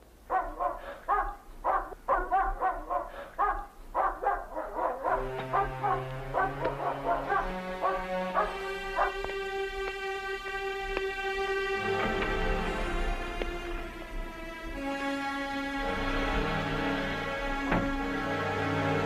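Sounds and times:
dog barking: 0:00.3 - 0:09.3
soft string music: 0:05.0 - 0:19.0.

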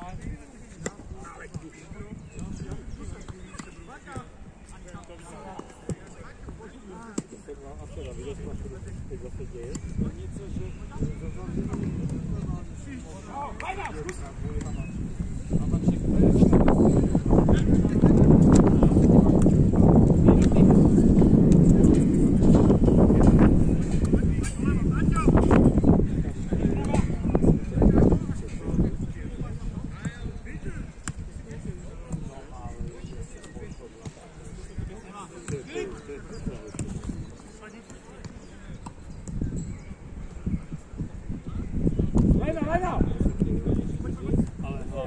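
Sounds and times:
wind rumble on microphone: 0:00.0 - 0:04.9, 0:07.6 - 0:35.0, 0:38.6 - 0:45.0
distant players' voices: 0:00.1 - 0:45.0.

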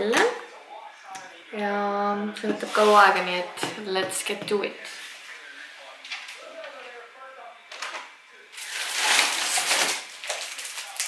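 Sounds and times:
plastic packaging crinkling: 0:08.6 - 0:11.0.

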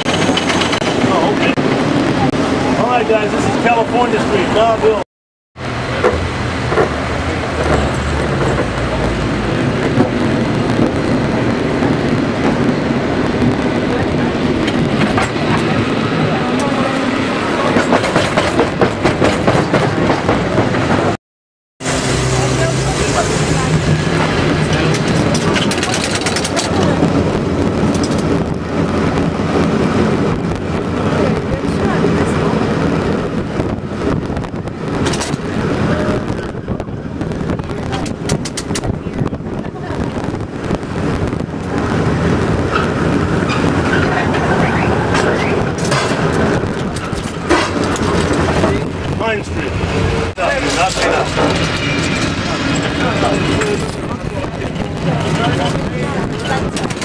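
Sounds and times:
cable car rumble and clatter: 0:00.0 - 0:05.0, 0:05.6 - 0:21.2, 0:21.8 - 0:57.0
passengers' voices: 0:00.0 - 0:05.0, 0:05.8 - 0:21.2, 0:22.0 - 0:57.0
street traffic: 0:00.0 - 0:05.0, 0:05.6 - 0:21.2, 0:21.8 - 0:57.0.

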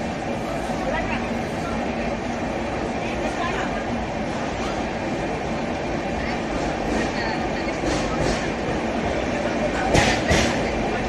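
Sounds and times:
train wheels rumbling on rails: 0:00.0 - 0:11.0.

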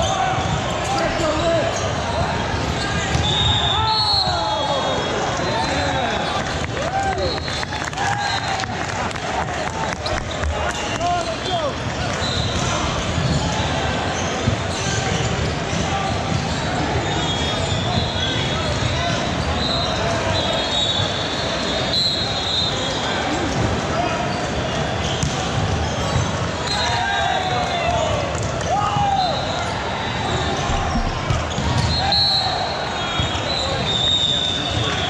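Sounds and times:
volleyballs hit and bouncing: 0:00.0 - 0:04.4, 0:05.1 - 0:19.4, 0:23.3 - 0:32.1.

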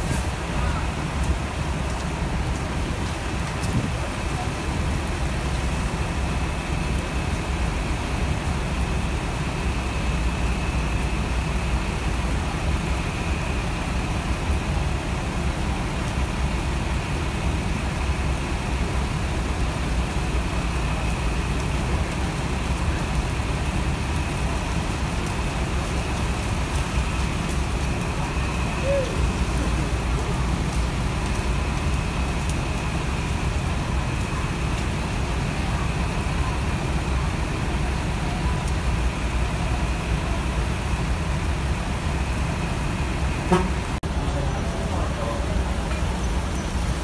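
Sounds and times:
idling buses and traffic: 0:00.0 - 0:47.0
rain on wet pavement: 0:00.0 - 0:47.0.

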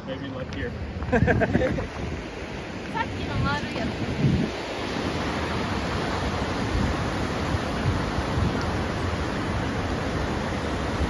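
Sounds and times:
ocean surf breaking: 0:00.0 - 0:11.0.

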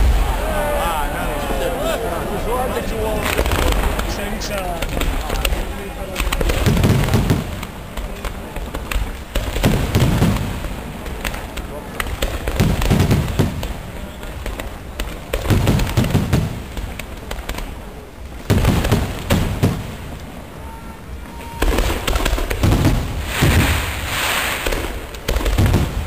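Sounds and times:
fireworks bursting with deep booms: 0:00.0 - 0:01.8, 0:02.8 - 0:26.0
crackle of small fireworks: 0:03.1 - 0:26.0.

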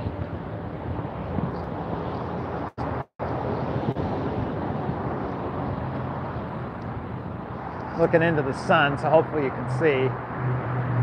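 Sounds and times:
wind on microphone: 0:00.0 - 0:08.0
road traffic rush: 0:00.0 - 0:11.0.

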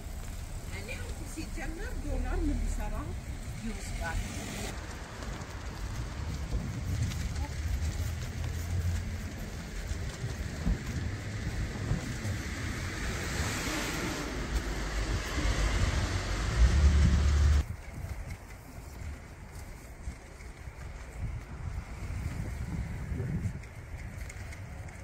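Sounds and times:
cars passing on road: 0:00.0 - 0:17.7
wind rumble on microphone: 0:00.0 - 0:25.0.

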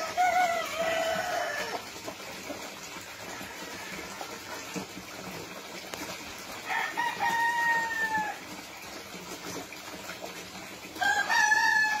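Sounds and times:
rooster crowing: 0:00.0 - 0:01.8, 0:06.6 - 0:08.4, 0:11.0 - 0:12.0.

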